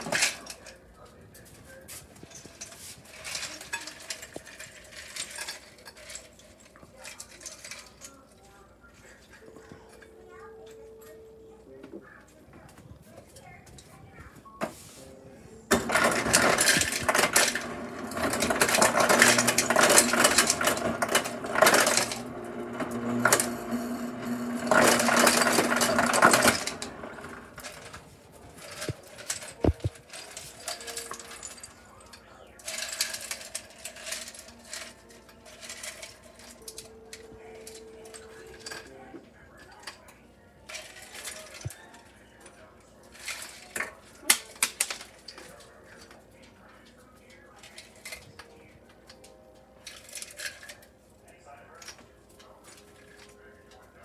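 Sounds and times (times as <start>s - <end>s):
ice cubes clinking: 2.2s - 8.2s, 15.7s - 28.0s, 28.6s - 39.0s
ice cubes clattering into cup: 2.3s - 8.1s, 15.7s - 28.0s, 28.6s - 39.0s
ice dispenser motor hum: 15.7s - 28.0s.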